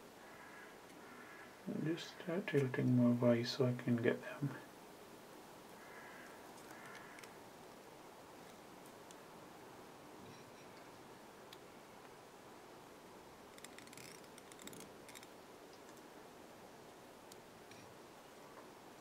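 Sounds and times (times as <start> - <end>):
faint clicks and rustles of hands: 6.2 - 9.3, 13.5 - 16.2.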